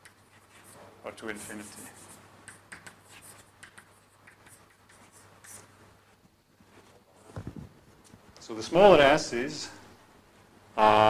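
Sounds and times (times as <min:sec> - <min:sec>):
chalk scratching on blackboard: 0:00.0 - 0:05.8.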